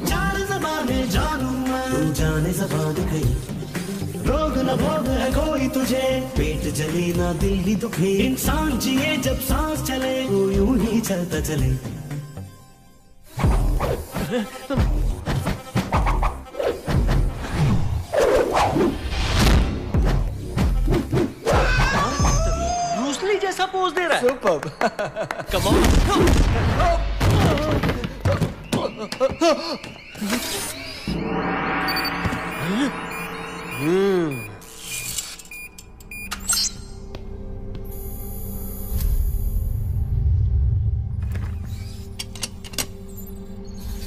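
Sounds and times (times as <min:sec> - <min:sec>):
short electronic beeps: 0:30.2 - 0:37.0
electronic clicks and sweeps: 0:30.2 - 0:37.1
whooshing effects: 0:30.8 - 0:35.4
film soundtrack music: 0:30.8 - 0:44.0
voice going hmm: 0:32.5 - 0:34.6.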